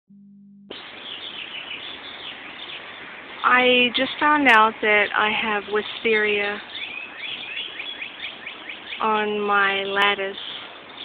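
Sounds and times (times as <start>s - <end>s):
low hum: 0.1s - 0.8s
outdoor background hiss: 0.7s - 11.0s
small birds chirping: 0.7s - 11.0s.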